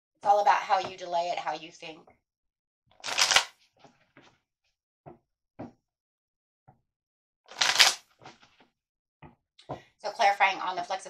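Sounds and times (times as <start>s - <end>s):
riffle of cards: 3.0s - 3.5s, 7.5s - 8.4s.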